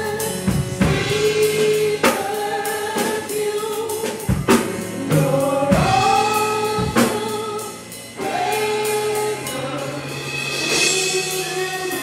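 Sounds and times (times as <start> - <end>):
drum and cymbal hits: 0.0 - 12.0
gospel singing: 0.0 - 12.0
keyboard: 0.0 - 12.0.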